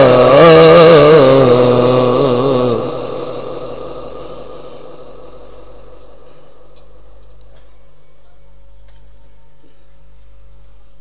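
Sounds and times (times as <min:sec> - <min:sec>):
person chanting through loudspeakers: 0:00.0 - 0:07.2
faint steady hum: 0:00.0 - 0:11.0.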